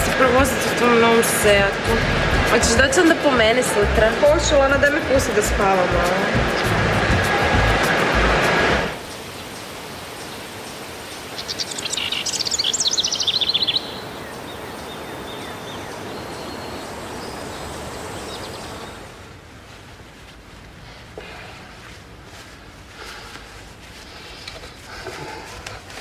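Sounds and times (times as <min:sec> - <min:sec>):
music: 0:00.0 - 0:09.0
steady background hiss: 0:00.0 - 0:26.0
songbird chirping: 0:09.0 - 0:19.2.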